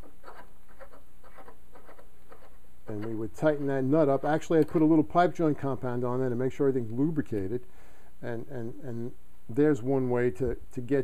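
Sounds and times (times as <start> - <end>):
scratchy rubbing strokes: 0.0 - 6.0.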